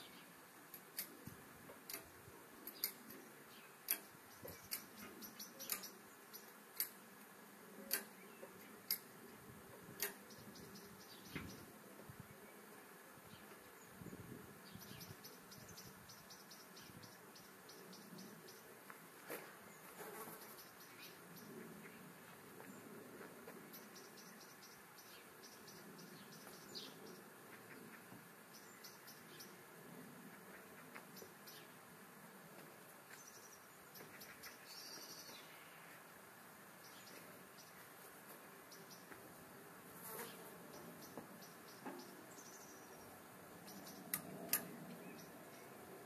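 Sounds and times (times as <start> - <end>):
sharp clicks: 0.7 - 7.0, 7.9 - 9.2, 9.9 - 10.4.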